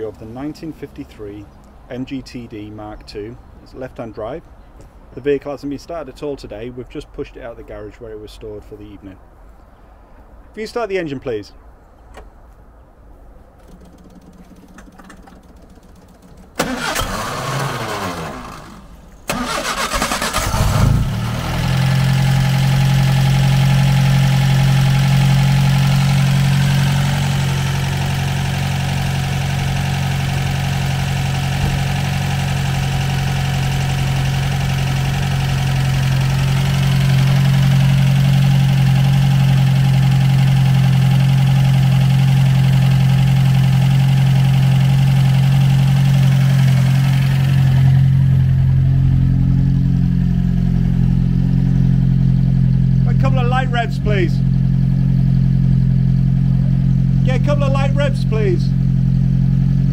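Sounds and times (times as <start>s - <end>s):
car engine starting and idling: 13.4s - 59.9s.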